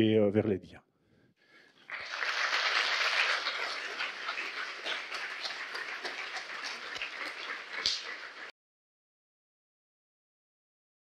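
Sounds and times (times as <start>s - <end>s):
audience applauding: 1.8s - 8.5s.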